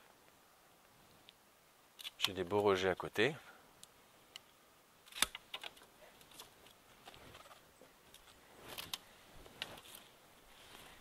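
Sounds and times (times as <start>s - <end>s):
light rustling: 5.1s - 11.0s.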